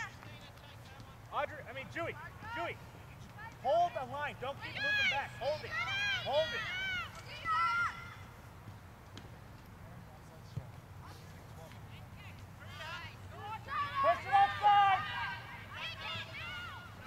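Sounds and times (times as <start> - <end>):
outdoor field background: 0.0 - 17.0.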